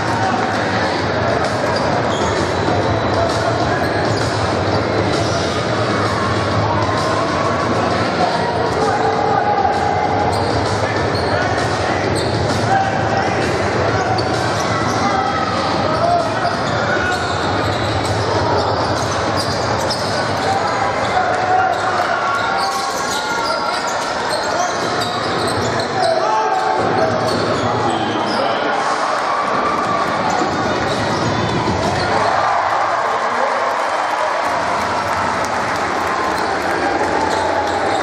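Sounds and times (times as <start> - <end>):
crowd chatter: 0.0 - 38.0.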